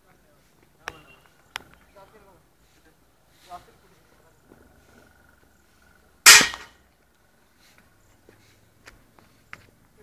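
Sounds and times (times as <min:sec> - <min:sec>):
loud sharp impact: 0:06.3 - 0:06.7.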